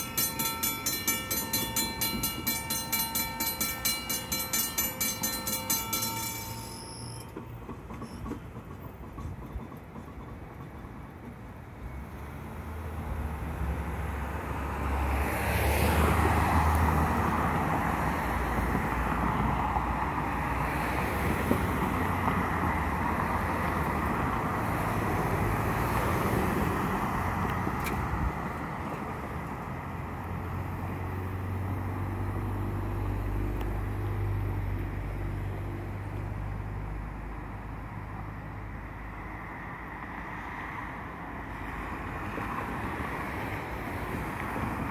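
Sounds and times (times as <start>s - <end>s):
cars driving past: 12.2s - 44.9s.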